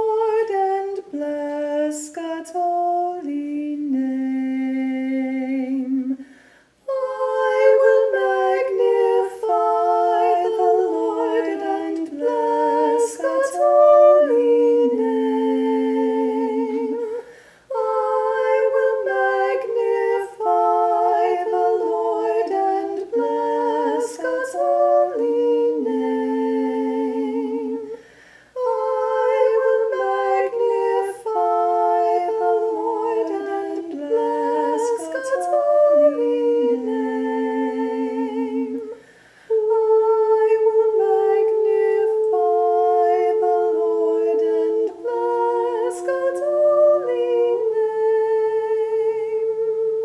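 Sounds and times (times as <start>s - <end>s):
woman singing chant a cappella: 0.0s - 50.0s.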